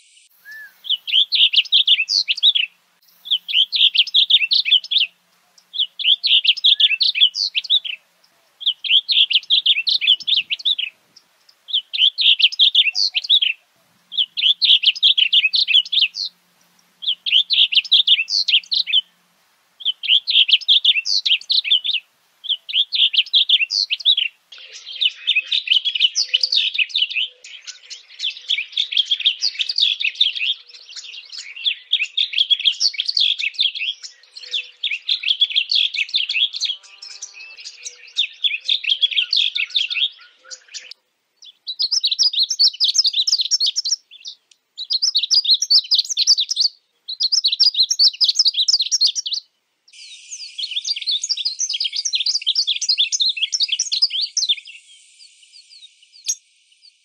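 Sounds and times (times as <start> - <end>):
bird singing: 0.0 - 57.0.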